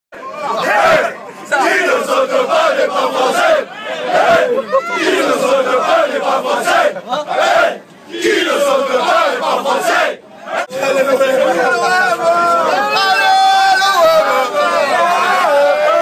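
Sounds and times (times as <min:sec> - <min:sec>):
men chanting and shouting: 0:00.2 - 0:16.0.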